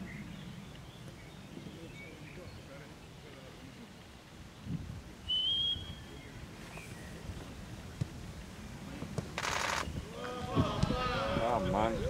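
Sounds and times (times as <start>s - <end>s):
men calling out: 10.0s - 12.0s.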